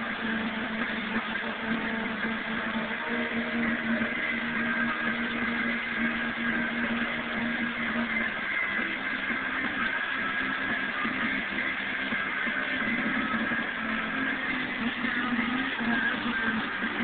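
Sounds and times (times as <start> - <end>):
music playing: 0.0 - 17.0.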